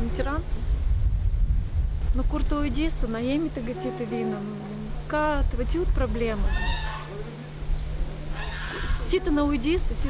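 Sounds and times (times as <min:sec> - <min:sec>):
low rumble: 0:00.0 - 0:10.0
steady low hum: 0:00.0 - 0:10.0
animal call: 0:06.4 - 0:07.5, 0:08.2 - 0:09.4.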